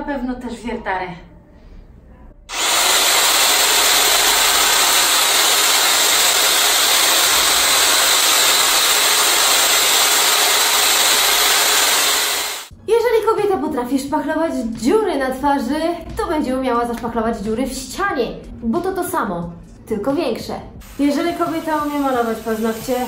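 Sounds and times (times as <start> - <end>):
handheld electric motor tool running: 2.5 - 12.7.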